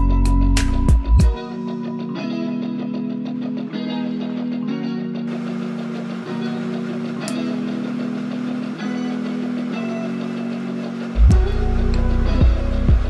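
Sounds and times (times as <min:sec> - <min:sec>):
sustained low music chords: 0:05.2 - 0:13.0.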